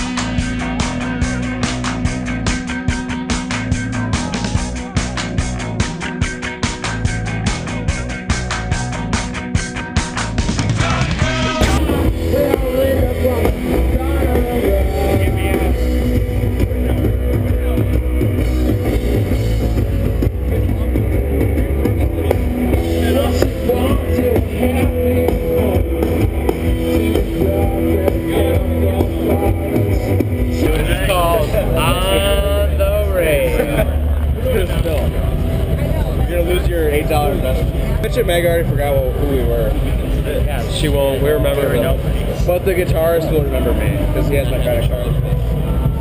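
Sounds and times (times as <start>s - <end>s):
loud rock music: 0.0s - 46.0s
people shouting or singing along: 10.8s - 15.9s.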